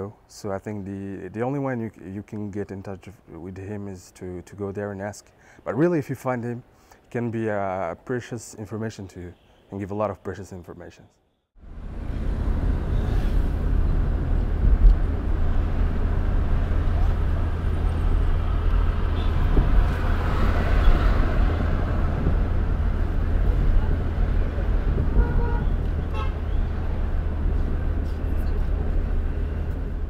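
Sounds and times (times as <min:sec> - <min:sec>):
road and traffic noise: 0:04.3 - 0:07.2, 0:11.6 - 0:30.0
vehicle engine rumble: 0:11.6 - 0:30.0
vehicle horn toots: 0:19.1 - 0:19.5, 0:25.0 - 0:26.5.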